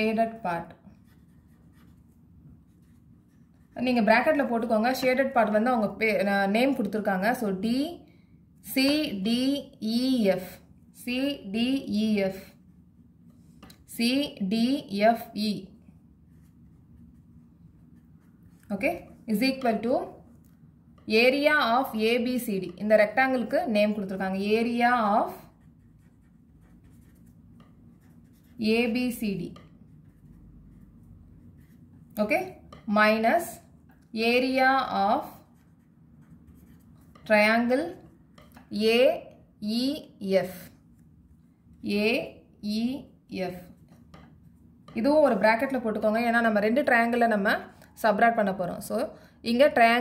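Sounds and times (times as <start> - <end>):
marker scratching on paper: 0.2 - 5.3, 16.2 - 38.8
person speaking: 18.2 - 20.4, 21.0 - 27.2, 28.1 - 29.6, 31.6 - 35.7, 44.9 - 50.0.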